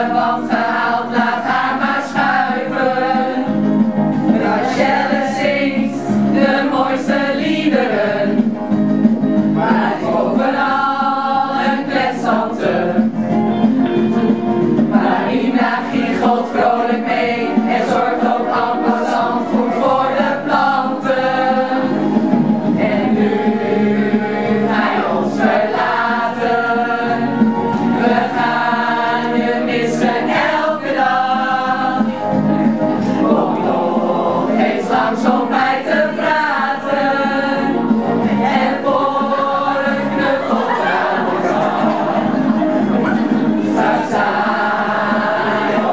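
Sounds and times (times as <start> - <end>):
group of adults singing in chorus: 0.0 - 13.7, 14.7 - 45.9.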